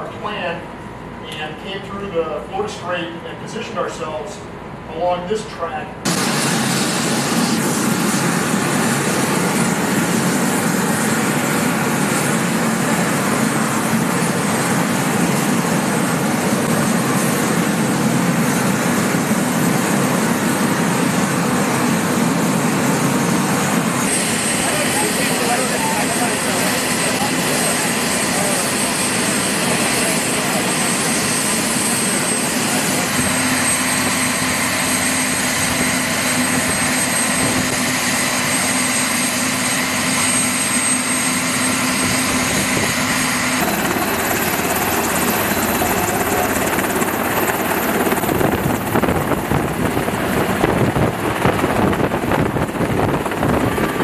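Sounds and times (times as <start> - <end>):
high turbine whine: 0.0 - 54.0
helicopter turbines and rotors: 6.0 - 54.0.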